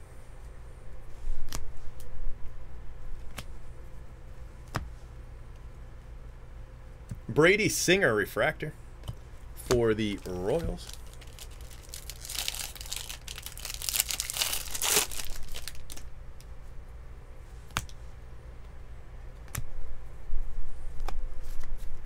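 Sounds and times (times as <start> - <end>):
foil wrapper tearing and crinkling: 10.0 - 16.0
sharp clicks of cards: 17.7 - 18.0, 19.4 - 19.7.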